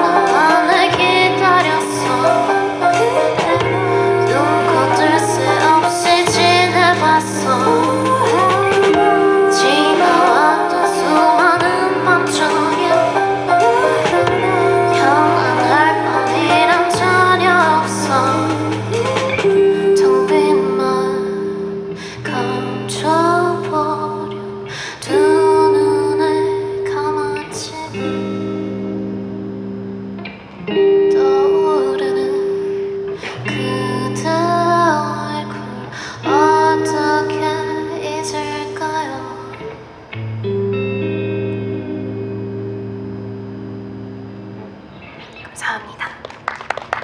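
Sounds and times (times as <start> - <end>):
woman singing: 0.0 - 29.1, 30.8 - 39.8
electric guitar chords: 0.0 - 47.0.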